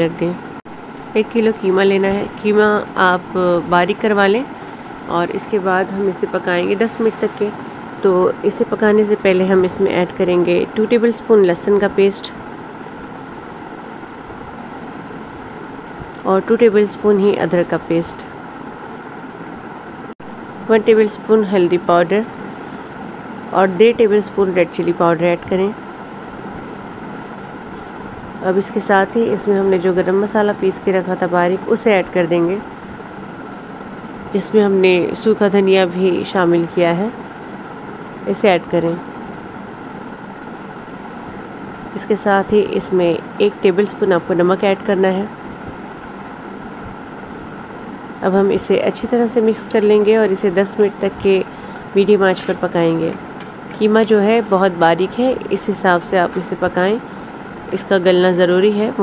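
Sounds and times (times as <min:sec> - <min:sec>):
faint hum: 0:00.0 - 0:59.0
low background noise: 0:00.0 - 0:59.0.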